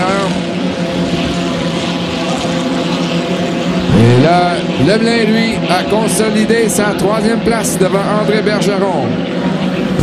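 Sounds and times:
racing boat engines at full speed: 0.0 - 10.0.

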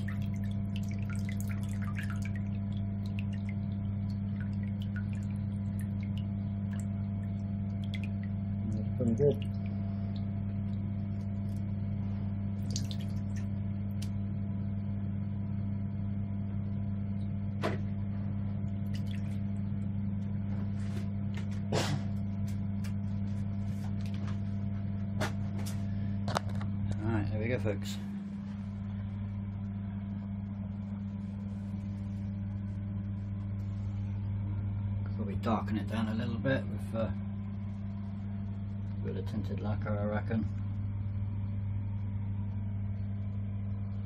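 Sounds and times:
low mains hum: 0.0 - 44.0.

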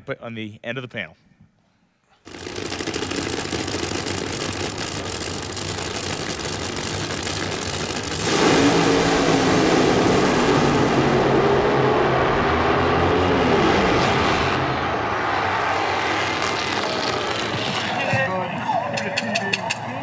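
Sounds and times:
drag racing car engines: 2.3 - 20.0.

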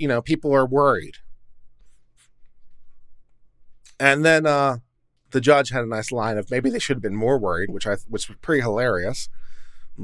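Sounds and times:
low steady hum: 0.0 - 10.0
faint scratching: 1.8 - 3.1.

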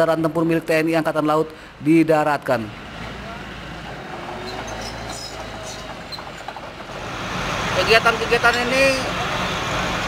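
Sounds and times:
tank engine rumbling: 2.6 - 10.0.

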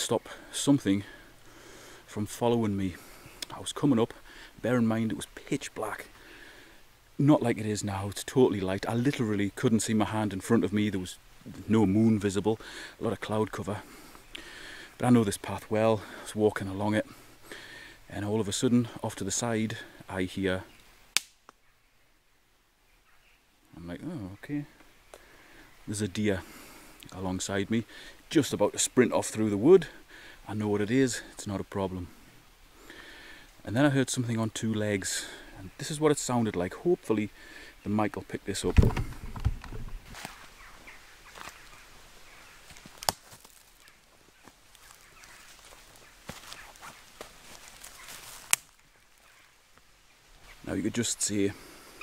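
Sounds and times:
twigs snapping underfoot: 20.8 - 21.6, 42.6 - 49.3
dry stick snapping: 21.1 - 21.6, 42.7 - 44.0, 48.3 - 48.8
footsteps through leaf litter: 40.0 - 41.9, 42.5 - 49.3.

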